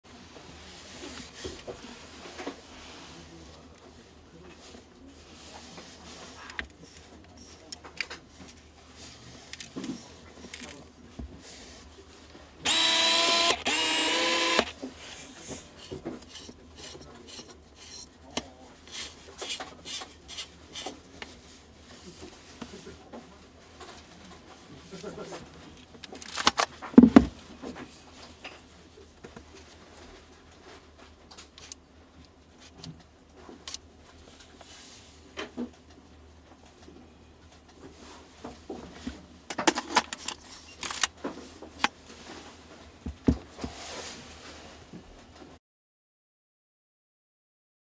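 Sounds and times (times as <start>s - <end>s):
autofocus motor whirring: 12.6s - 14.8s.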